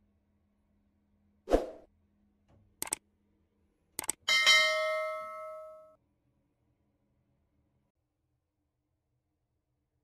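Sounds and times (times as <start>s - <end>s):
quick clicks: 2.8s - 3.0s, 4.0s - 4.2s
bright bell ding: 4.3s - 6.0s.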